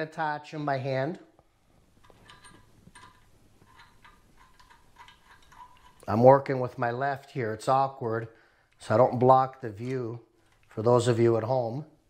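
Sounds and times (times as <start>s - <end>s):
light metallic clicks and scrapes: 2.0s - 6.3s, 8.7s - 10.8s.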